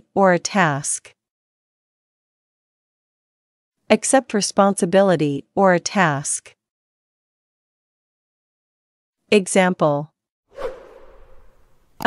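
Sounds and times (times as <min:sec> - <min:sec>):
whoosh transition effect: 0:10.5 - 0:12.0.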